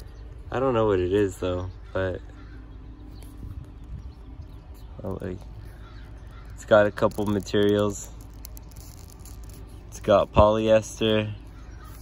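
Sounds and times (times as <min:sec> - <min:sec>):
fingers handling paper label: 0:04.7 - 0:12.0.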